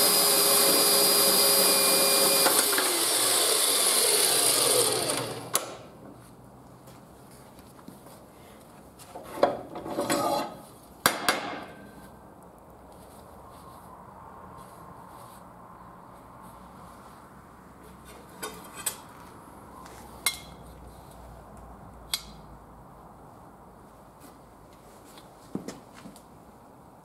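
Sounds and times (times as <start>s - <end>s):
metal clattering and scraping: 9.2s - 10.7s.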